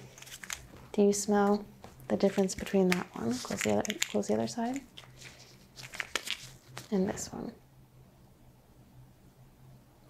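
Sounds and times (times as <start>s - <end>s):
gloved hands rustling: 0.0s - 1.0s, 1.8s - 7.0s
woman speaking: 0.9s - 4.9s, 6.9s - 7.6s.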